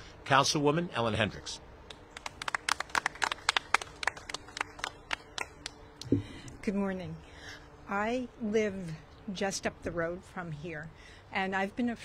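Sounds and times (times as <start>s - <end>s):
scattered applause: 2.2s - 5.8s.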